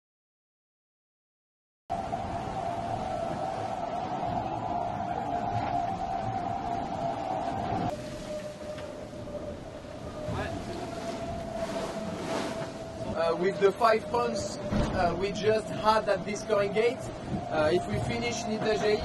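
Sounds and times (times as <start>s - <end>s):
water rushing along hull: 1.9s - 19.0s.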